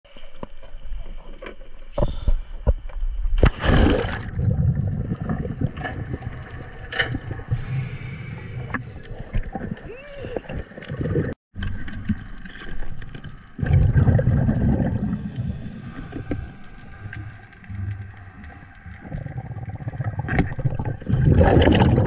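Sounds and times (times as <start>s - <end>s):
muffled underwater bubbling: 13.6s - 22.0s.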